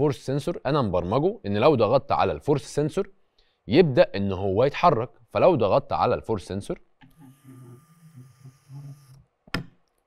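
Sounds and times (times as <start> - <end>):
toy robot motors humming: 7.1 - 9.2.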